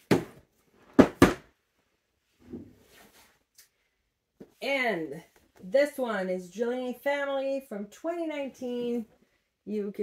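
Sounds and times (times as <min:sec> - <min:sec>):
sharp knocks on cardboard box: 0:01.0 - 0:01.5.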